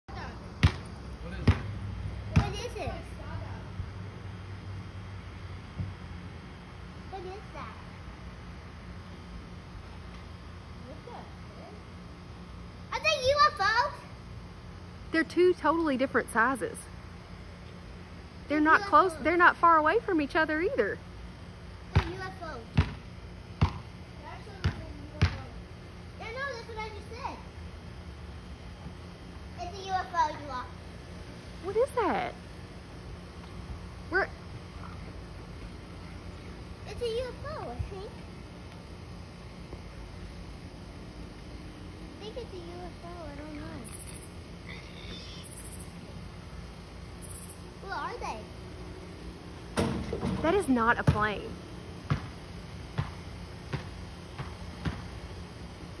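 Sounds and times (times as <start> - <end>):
ball bouncing thuds: 0.6 - 2.6, 21.9 - 23.0, 23.6 - 23.9, 24.6 - 25.5, 49.8 - 55.1.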